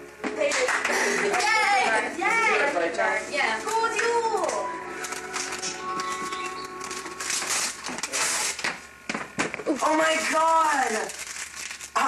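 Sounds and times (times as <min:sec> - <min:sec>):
people's voices: 0:00.4 - 0:08.5
wrapping paper tearing and rustling: 0:03.3 - 0:12.0
voice holding long note: 0:04.5 - 0:08.1.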